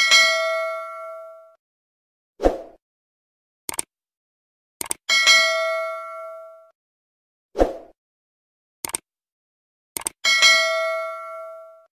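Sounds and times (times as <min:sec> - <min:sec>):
double mouse click: 0:08.8 - 0:09.0
notification bell ding: 0:10.3 - 0:11.9.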